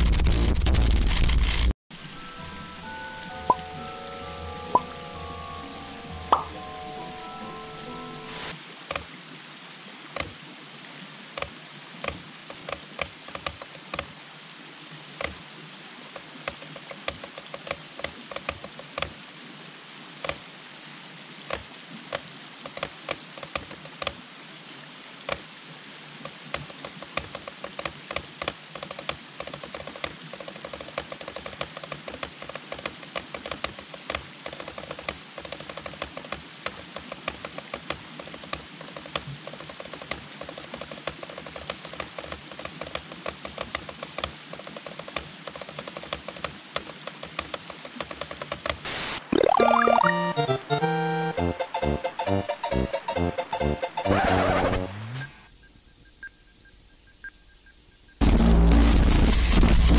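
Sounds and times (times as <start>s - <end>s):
stream water rushing: 1.9s - 30.4s, 32.8s - 55.3s.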